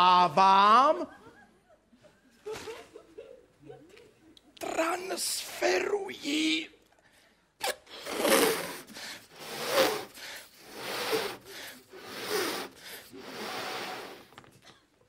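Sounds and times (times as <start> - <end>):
man blowing and gasping: 7.6 - 14.4.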